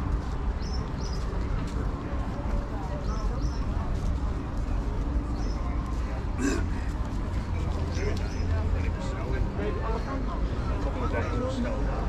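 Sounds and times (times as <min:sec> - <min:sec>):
chatter of passers-by: 0:00.0 - 0:12.0.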